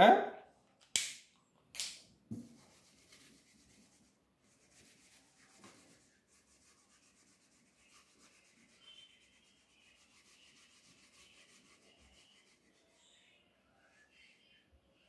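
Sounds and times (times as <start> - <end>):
duster rubbing on whiteboard: 2.4 - 12.9.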